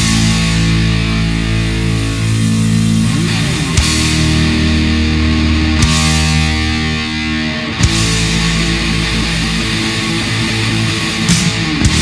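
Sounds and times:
bass chords: 0.0s - 12.0s
distorted electric guitars: 0.0s - 12.0s
drums: 0.0s - 12.0s.

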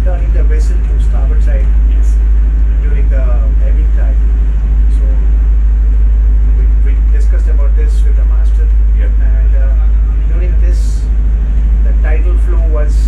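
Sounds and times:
faint voices: 0.0s - 5.4s, 6.4s - 11.2s
boat diesel engine drone: 0.0s - 13.0s.

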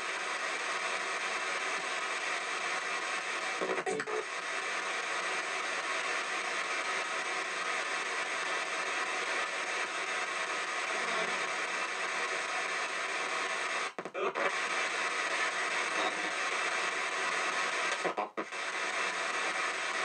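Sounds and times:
radio static hiss: 0.0s - 20.0s.

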